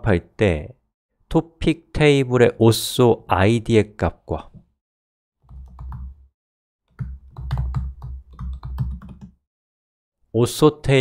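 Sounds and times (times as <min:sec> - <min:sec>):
typing on keyboard: 0:05.4 - 0:06.2, 0:06.9 - 0:09.4.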